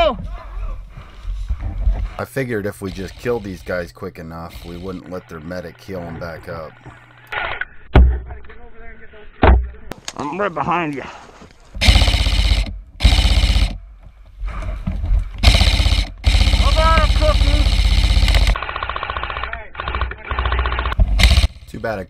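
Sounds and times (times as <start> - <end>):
airsoft rifles firing full-auto bursts: 11.8 - 13.8, 15.4 - 21.6.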